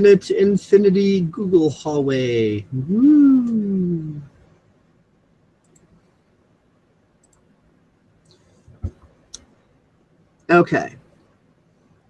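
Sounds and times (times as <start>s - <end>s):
computer mouse clicks: 5.6s - 6.0s, 7.2s - 7.5s, 8.2s - 9.5s.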